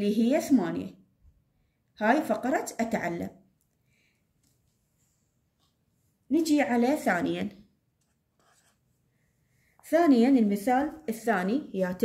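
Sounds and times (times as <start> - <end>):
woman speaking: 0.0 - 1.0, 2.0 - 3.4, 6.3 - 7.7, 9.8 - 12.0
pen scratching on paper: 8.0 - 9.0.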